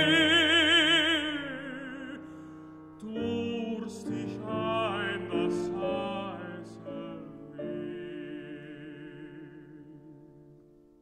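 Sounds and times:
baritone voice singing with vibrato: 0.0 - 2.4, 3.0 - 10.5.

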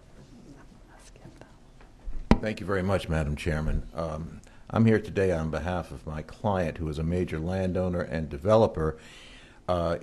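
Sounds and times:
faint whispering voices: 0.3 - 2.0.

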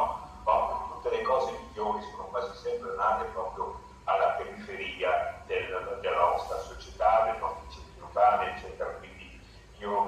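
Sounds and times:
man speaking over video call: 0.0 - 10.0.

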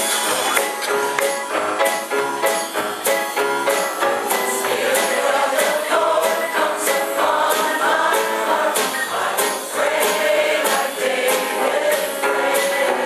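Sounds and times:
live band playing: 0.0 - 13.0
mixed choir singing: 3.9 - 13.0.

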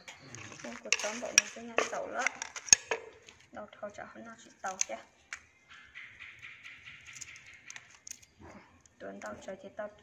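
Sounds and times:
pestle knocking in wooden mortar: 0.7 - 3.2.

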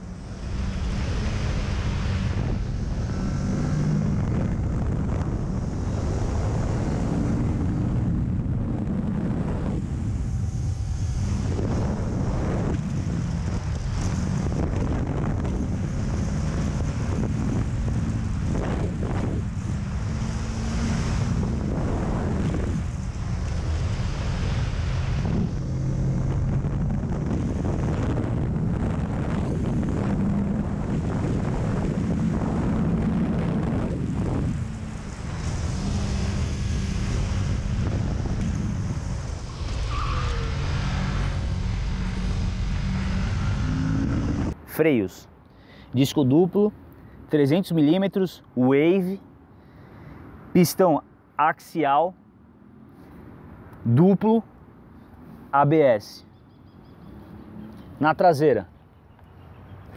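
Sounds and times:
motorcycle engine accelerating: 0.0 - 44.6
wind noise on microphone: 0.0 - 44.6.

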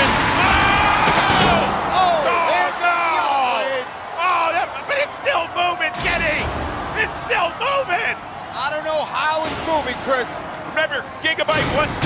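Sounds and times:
excited shouting: 0.0 - 11.6.

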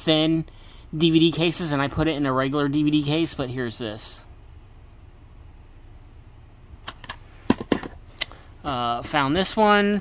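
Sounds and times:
faint steady hum: 0.0 - 10.0.

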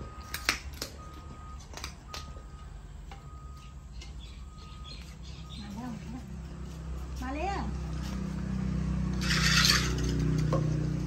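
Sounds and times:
metal food dish scraping: 9.1 - 10.8.

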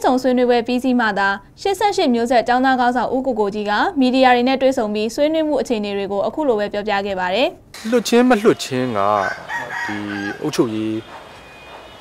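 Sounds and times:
man holding long vowels: 7.8 - 11.0
faint rooster crowing: 8.6 - 12.0.

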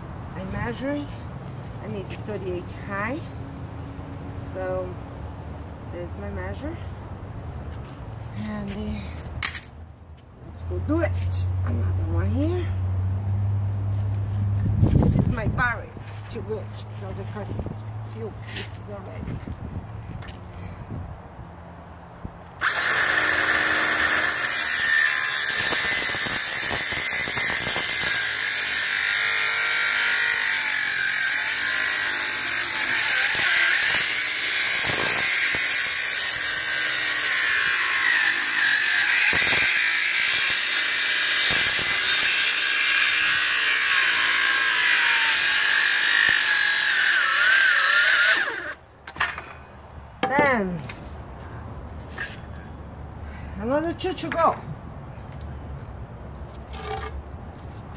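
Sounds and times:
circular saw cutting wood: 22.6 - 49.3.

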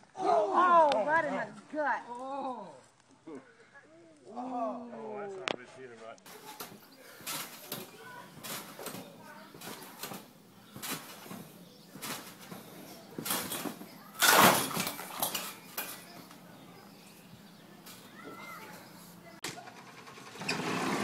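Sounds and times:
loud trampoline landing: 6.3 - 16.2
trampoline springs creaking: 6.3 - 21.0.

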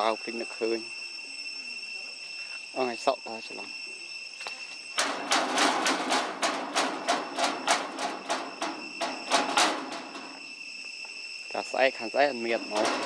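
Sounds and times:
high insect drone: 0.0 - 13.0
rapid knocks or rattles: 5.0 - 10.4.

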